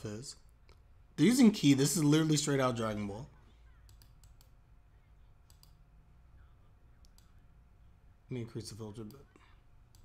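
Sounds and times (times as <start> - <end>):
computer mouse clicks: 3.8 - 4.6, 5.4 - 5.8, 7.0 - 7.4.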